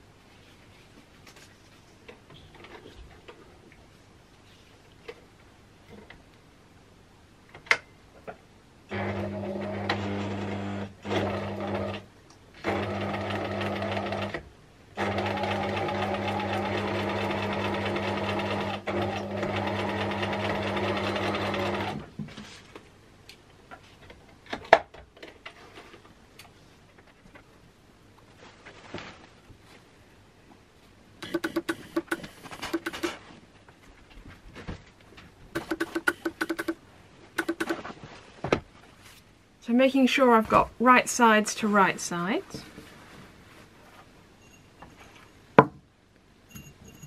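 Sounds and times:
sewing machine stitching: 8.9 - 14.4, 15.0 - 22.1, 31.2 - 33.2, 35.6 - 36.8, 37.4 - 37.8.

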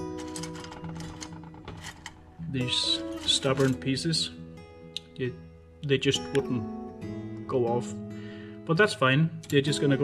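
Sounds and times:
guitar music: 0.0 - 10.0.

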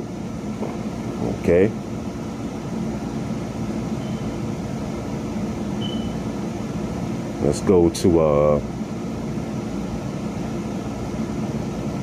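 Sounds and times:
steady mechanical hum: 0.0 - 12.0.

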